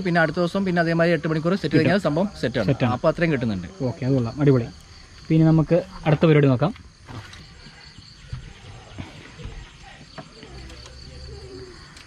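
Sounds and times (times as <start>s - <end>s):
man talking: 0.0s - 6.8s
high insect drone: 0.0s - 12.0s.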